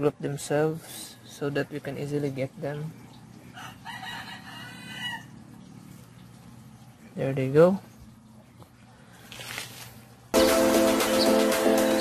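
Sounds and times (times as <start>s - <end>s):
faint rooster crowing: 3.4s - 5.5s.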